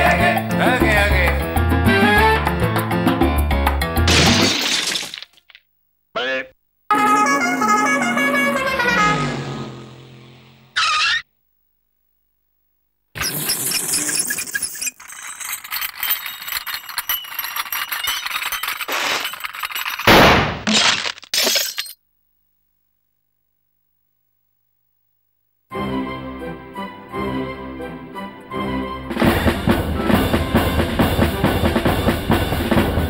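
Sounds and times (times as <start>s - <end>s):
cartoon breaking crashes: 4.0s - 5.6s, 13.2s - 22.0s
cartoon clattering effects: 10.8s - 11.3s, 13.2s - 20.7s.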